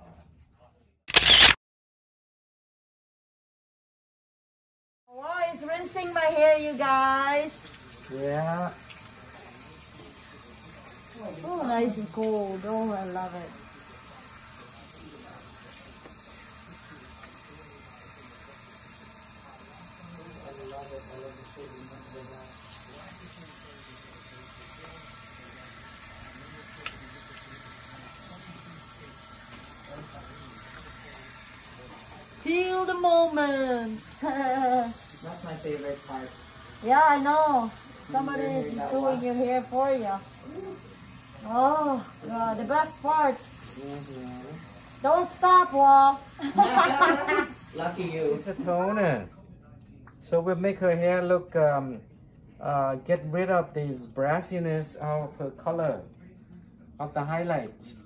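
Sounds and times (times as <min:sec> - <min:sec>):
camera shutter click: 0:01.1 - 0:01.6
hand sprayer water running over hair: 0:05.2 - 0:49.1.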